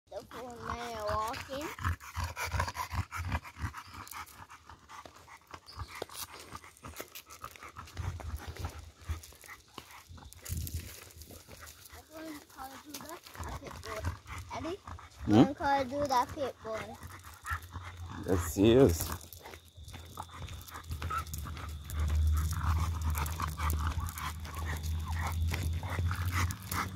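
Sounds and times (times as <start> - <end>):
dog panting hard: 0.1 - 26.9.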